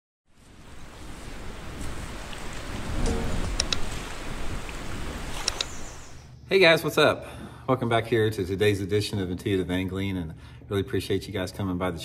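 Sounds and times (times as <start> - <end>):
water lapping: 0.4 - 6.3.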